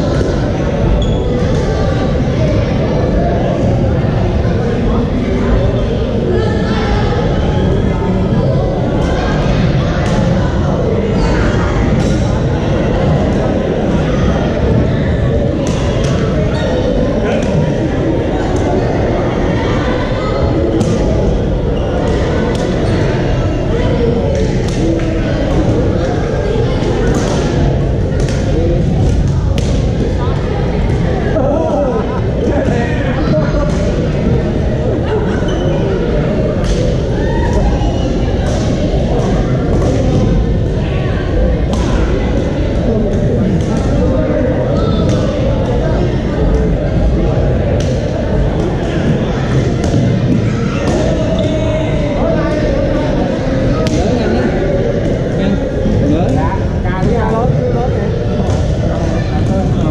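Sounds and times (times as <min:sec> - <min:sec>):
din of many voices: 0:00.0 - 0:59.9.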